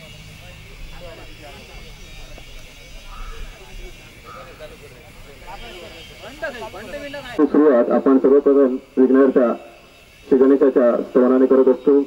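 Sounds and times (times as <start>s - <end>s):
steady hiss: 0.0s - 12.0s
man speaking into a microphone: 7.4s - 9.6s, 10.3s - 12.0s.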